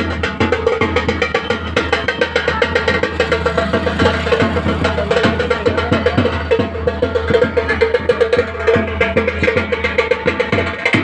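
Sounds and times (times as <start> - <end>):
drums beating quick rhythm: 0.0 - 11.0.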